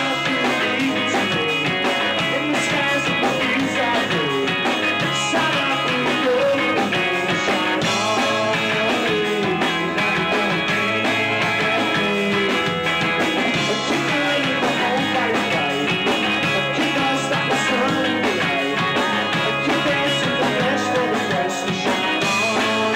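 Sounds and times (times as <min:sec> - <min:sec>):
drum kit: 0:00.0 - 0:22.9
electric bass guitar: 0:00.0 - 0:22.9.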